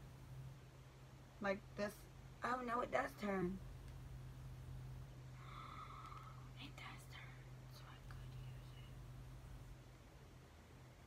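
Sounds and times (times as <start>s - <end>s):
low hum: 0.0s - 11.0s
person whispering: 5.6s - 9.0s.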